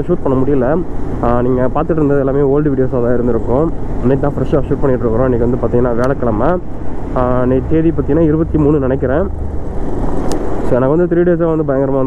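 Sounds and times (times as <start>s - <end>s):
wind and road noise: 0.0s - 12.0s.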